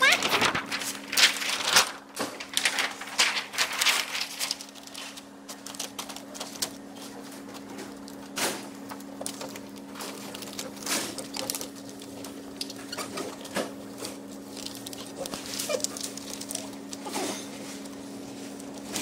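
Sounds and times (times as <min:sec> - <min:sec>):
plastic sheet crackling and clicking: 0:00.0 - 0:19.0
steady low hum: 0:00.0 - 0:19.0.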